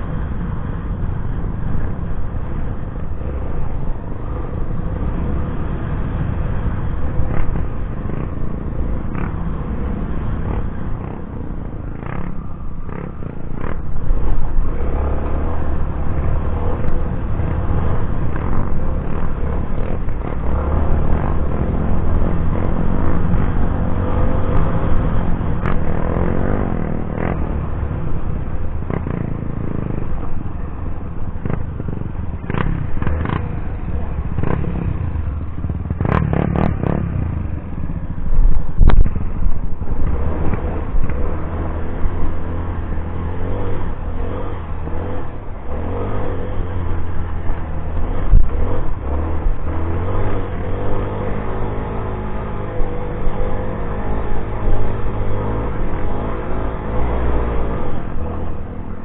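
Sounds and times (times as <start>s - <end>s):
motorcycle engine revving: 0.0s - 59.0s.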